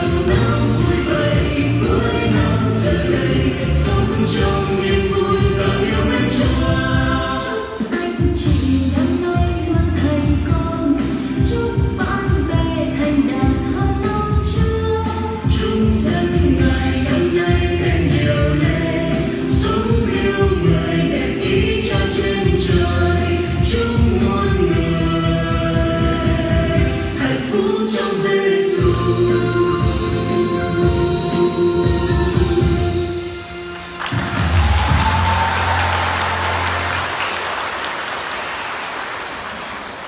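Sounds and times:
choir singing: 0:00.0 - 0:08.8, 0:15.9 - 0:33.3
audience applause: 0:33.8 - 0:40.0.

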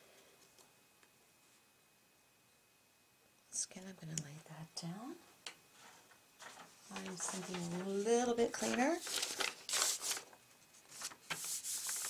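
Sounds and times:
woman talking quietly: 0:03.5 - 0:05.3, 0:06.9 - 0:09.0.

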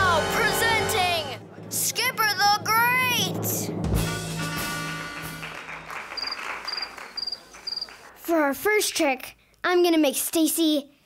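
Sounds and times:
cricket chirp sound effect: 0:06.1 - 0:08.0.

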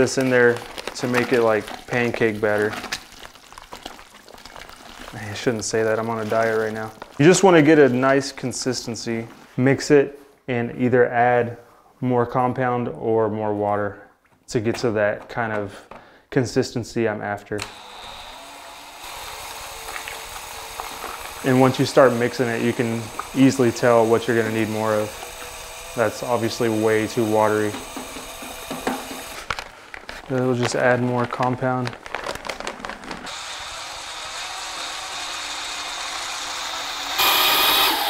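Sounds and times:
paddle mixer churning liquid: 0:00.0 - 0:07.8, 0:17.6 - 0:29.5, 0:33.3 - 0:38.0
powder pouring into bucket: 0:00.0 - 0:08.4, 0:17.7 - 0:38.0
drill motor hum: 0:17.6 - 0:29.5, 0:33.3 - 0:38.0.

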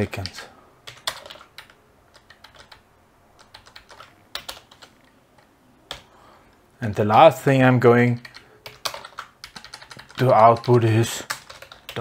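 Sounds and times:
typing on computer keyboard: 0:00.1 - 0:02.8, 0:03.4 - 0:06.1, 0:08.2 - 0:12.0.

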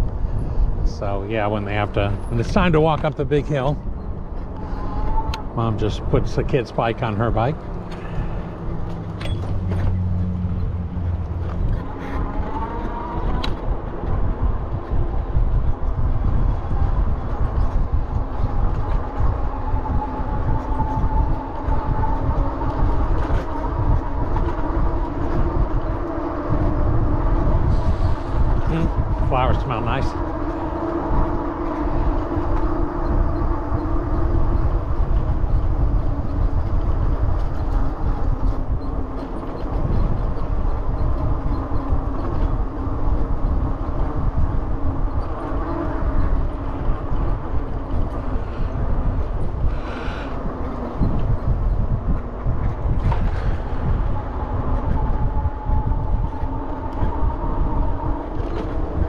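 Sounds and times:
steady whine from bicycle ride: 0:00.0 - 0:59.0
wind rumbling over microphone: 0:00.0 - 0:59.0.

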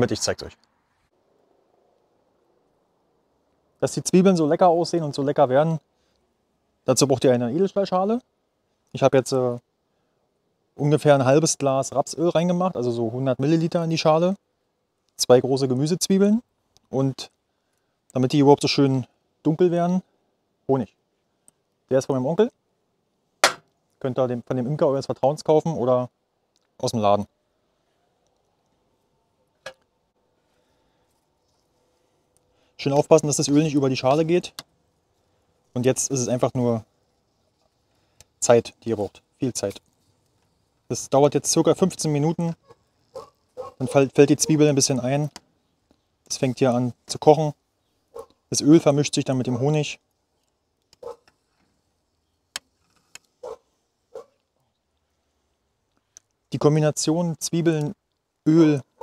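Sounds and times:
sharp click: 0:23.4 - 0:23.8.

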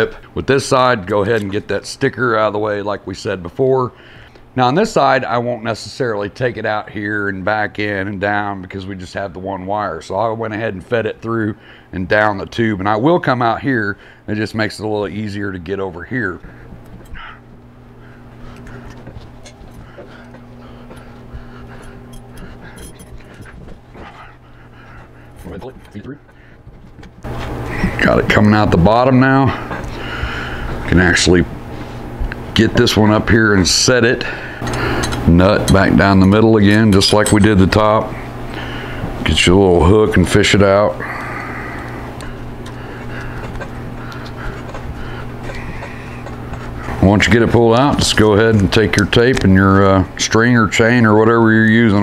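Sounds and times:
steady low hum: 0:00.0 - 0:52.0
wire and metal tube handling: 0:18.3 - 0:27.7, 0:34.6 - 0:39.2, 0:42.0 - 0:49.5.

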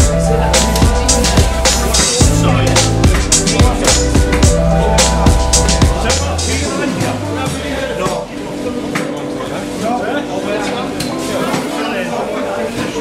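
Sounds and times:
background music: 0:00.0 - 0:13.0
indistinct voices and chatter: 0:00.0 - 0:13.0.

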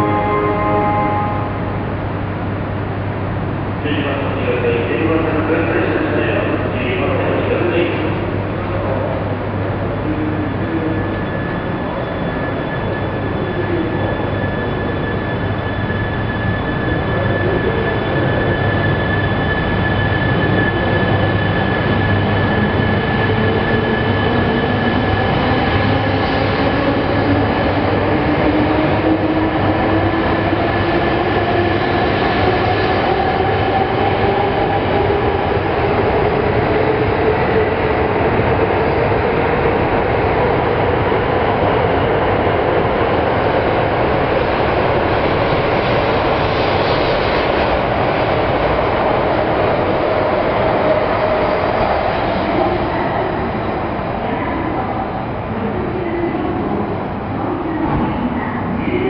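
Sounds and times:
train running past: 0:00.0 - 0:59.0.

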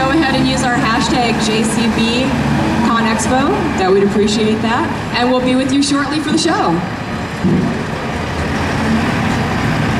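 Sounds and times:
busy background din: 0:00.0 - 0:09.9
diesel engine running: 0:00.0 - 0:09.9.

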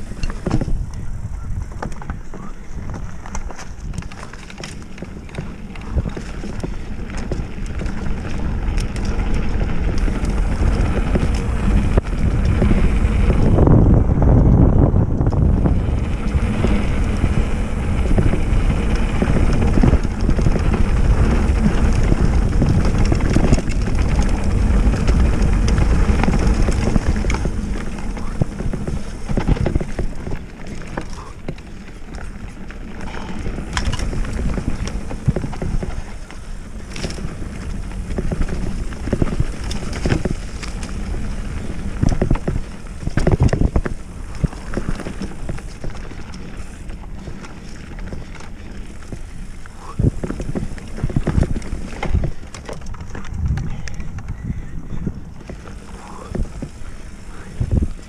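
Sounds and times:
bike clicks and rattles: 0:00.0 - 0:58.0
bike tyres rumbling on dirt: 0:00.0 - 0:58.0
wind buffeting microphone: 0:00.0 - 0:58.0.

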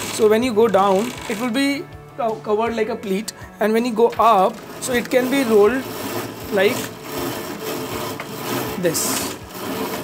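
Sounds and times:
fabric blind mechanism raising: 0:00.0 - 0:01.9, 0:03.1 - 0:10.0.

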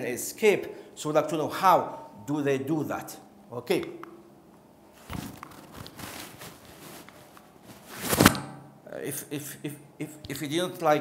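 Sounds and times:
rustling: 0:04.9 - 0:08.4
footsteps: 0:05.0 - 0:08.4
loud rustling thump: 0:05.0 - 0:08.5.

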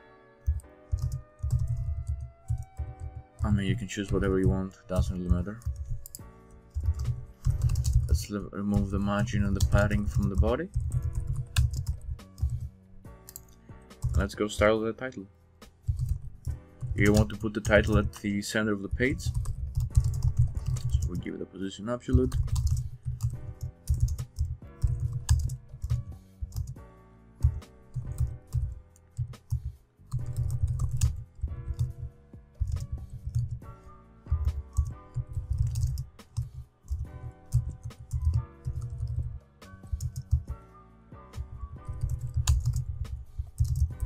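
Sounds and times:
background music chords: 0:00.0 - 0:44.0
computer keyboard typing: 0:00.4 - 0:14.4, 0:15.8 - 0:18.3, 0:18.9 - 0:21.2, 0:22.1 - 0:26.8, 0:27.4 - 0:40.5, 0:41.8 - 0:44.0.

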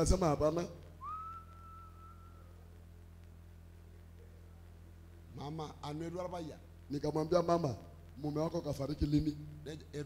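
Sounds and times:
high thin whistle note: 0:01.0 - 0:02.5.

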